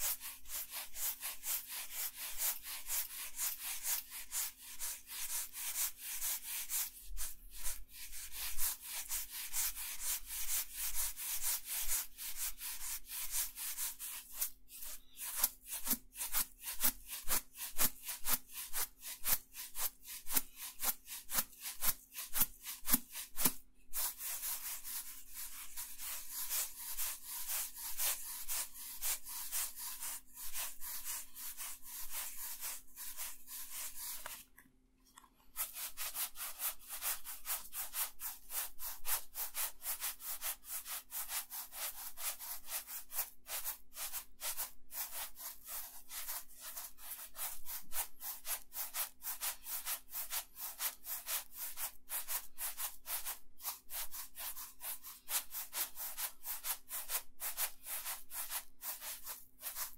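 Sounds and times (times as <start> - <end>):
sand shaken in plastic bottle: 13.3 - 34.5, 35.5 - 59.9.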